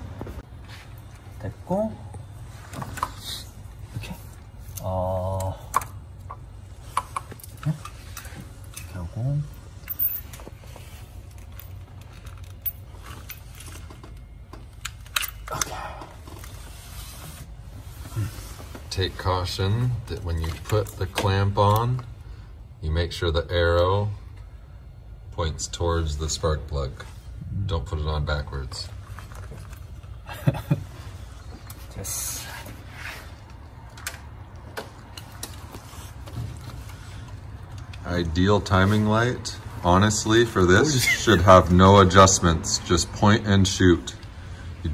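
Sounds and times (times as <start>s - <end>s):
steady low hum: 0.0s - 44.9s.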